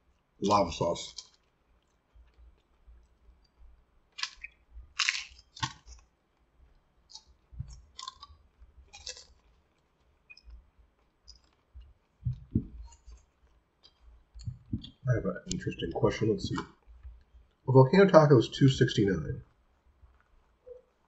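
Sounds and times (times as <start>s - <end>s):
crunchy taco chewing: 1.0s - 15.6s.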